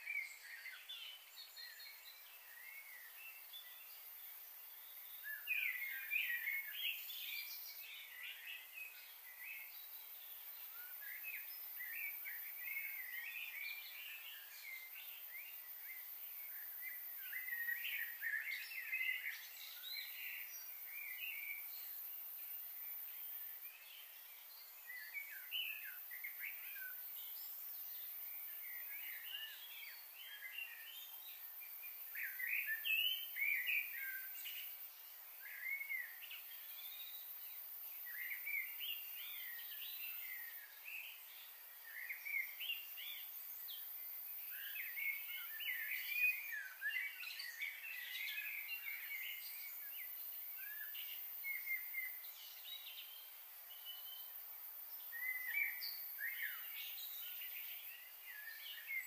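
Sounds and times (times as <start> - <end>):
faint steady hiss: 0.0 - 59.0
songbirds chirping: 0.0 - 59.0.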